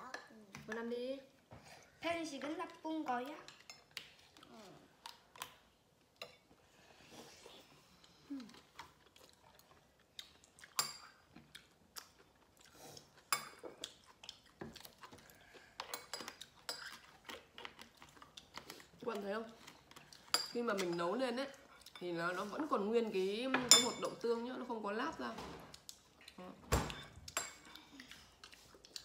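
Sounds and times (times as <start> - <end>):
utensils clinking on ceramic bowls: 23.5 - 24.2.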